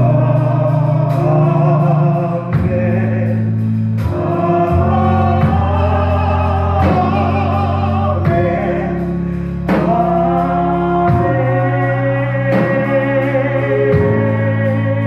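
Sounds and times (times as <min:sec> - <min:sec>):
band playing: 0:00.0 - 0:15.0
held bass chords: 0:00.0 - 0:15.0
voices singing: 0:00.0 - 0:15.0.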